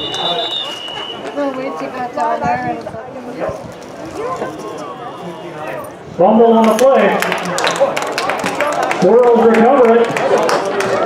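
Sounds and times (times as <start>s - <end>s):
crowd shouting: 0.0s - 2.0s, 4.1s - 6.0s
sharp clicks and claps: 6.6s - 11.0s.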